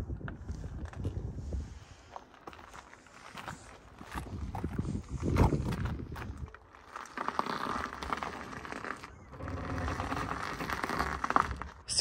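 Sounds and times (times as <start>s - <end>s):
footsteps walking: 2.1s - 11.8s.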